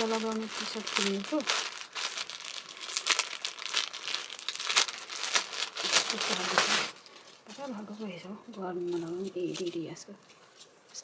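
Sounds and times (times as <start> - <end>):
packaging crinkling: 0.0 - 8.0.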